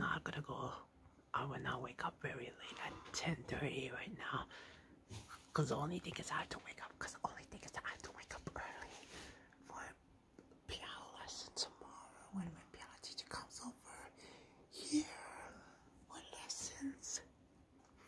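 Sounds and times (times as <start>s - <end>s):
faint whispering: 0.0s - 4.5s, 5.1s - 10.0s, 10.6s - 17.4s.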